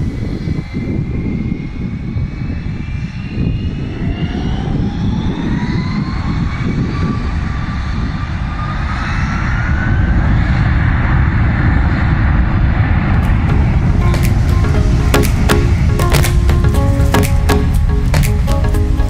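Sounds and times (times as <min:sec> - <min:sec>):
jet engines spooling up: 0:00.0 - 0:19.0.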